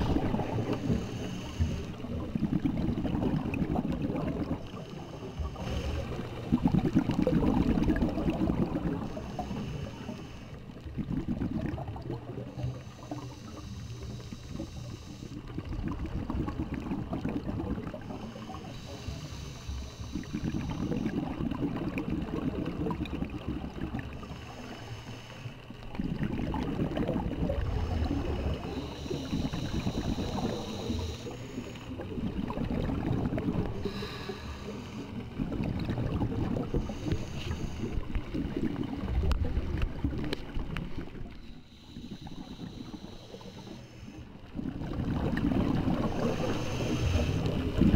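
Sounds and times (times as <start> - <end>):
bubbling exhale: 0.0 - 47.9
regulator hissing inhale: 0.4 - 2.2, 4.6 - 6.3, 8.9 - 10.7, 12.5 - 15.6, 17.9 - 21.4, 24.1 - 25.8, 27.5 - 32.1, 33.6 - 35.4, 36.6 - 38.3, 41.3 - 44.5, 46.0 - 47.8.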